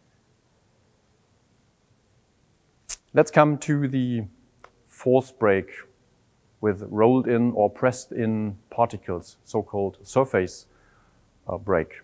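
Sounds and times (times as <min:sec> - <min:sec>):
sharp breath: 0:10.7 - 0:11.3.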